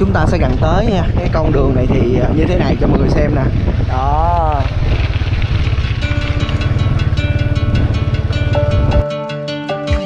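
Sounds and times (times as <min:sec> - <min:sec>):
motorbike engine rumbling: 0:00.0 - 0:09.6
background music: 0:05.9 - 0:10.0.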